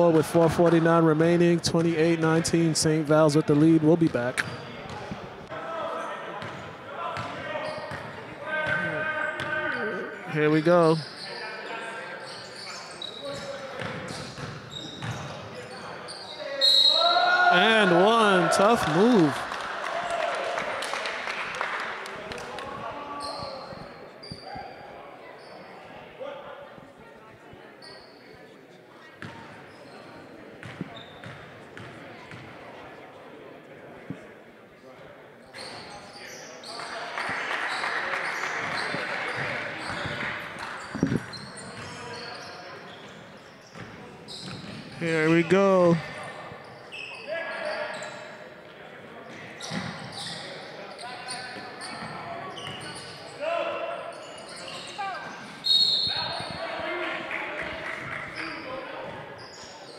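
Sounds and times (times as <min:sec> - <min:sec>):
players' voices: 0:00.0 - 0:31.1, 0:31.9 - 0:59.9.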